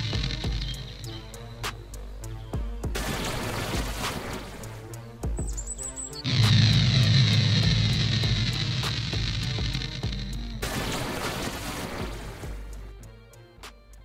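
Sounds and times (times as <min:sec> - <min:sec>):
background music with steady beat: 0:00.0 - 0:14.0.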